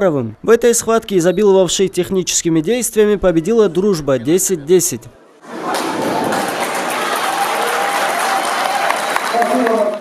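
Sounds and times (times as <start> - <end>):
audience applauding: 5.5 - 10.0.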